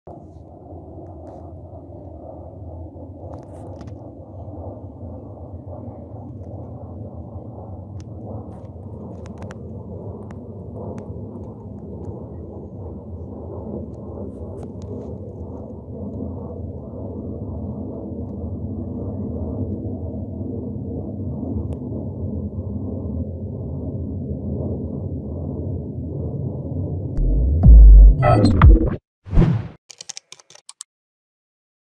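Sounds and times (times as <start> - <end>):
jet aircraft rumble: 0.1 - 29.0.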